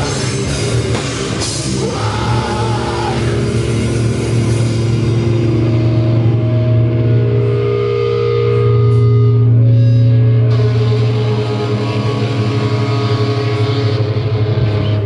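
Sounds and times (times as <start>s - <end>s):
distorted guitars droning chord: 0.0s - 15.0s.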